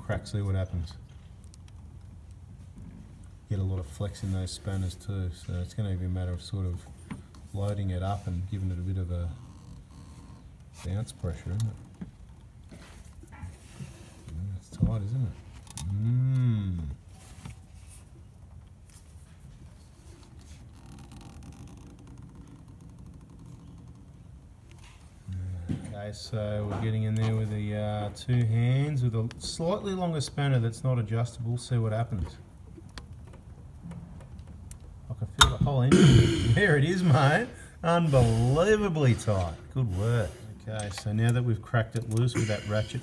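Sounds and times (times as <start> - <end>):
man humming: 15.8 - 17.0, 25.3 - 25.8
workshop noise: 17.0 - 43.0.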